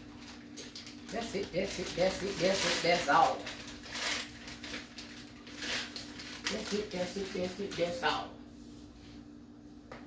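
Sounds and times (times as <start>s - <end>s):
plastic bag rustling and crinkling: 0.0s - 8.3s.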